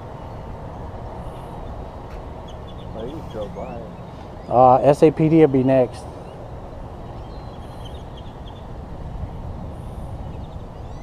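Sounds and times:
bird chirps: 2.4s - 4.9s, 7.0s - 8.7s, 9.8s - 11.0s.

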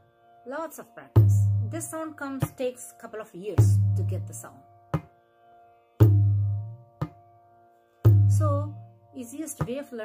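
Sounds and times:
tabla bass drum booming: 1.2s - 2.6s, 3.6s - 4.4s, 6.0s - 7.2s, 8.1s - 8.8s.

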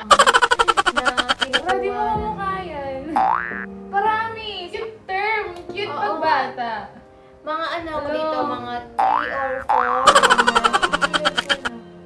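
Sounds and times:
cartoon boing glides: 3.2s - 3.7s, 9.0s - 11.7s.

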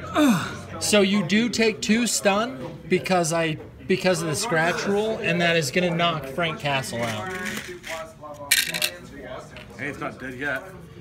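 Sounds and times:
game pieces clattering: 6.9s - 9.0s.

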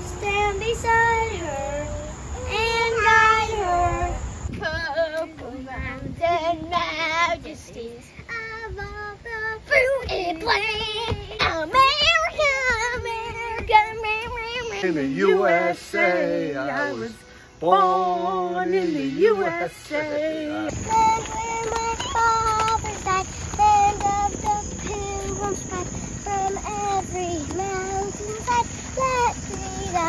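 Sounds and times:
girl singing held notes: 0.0s - 30.0s.

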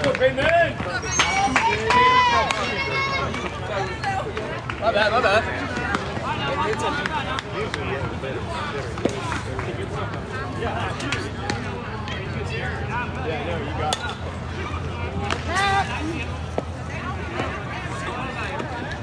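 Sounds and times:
players and spectators chattering: 0.0s - 19.0s.

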